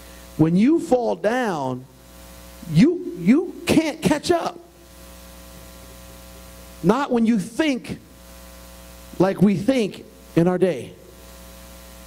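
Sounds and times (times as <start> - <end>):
electrical mains hum: 0.0 - 12.0
man speaking: 0.4 - 1.9, 2.6 - 4.7, 6.8 - 8.1, 9.2 - 11.1.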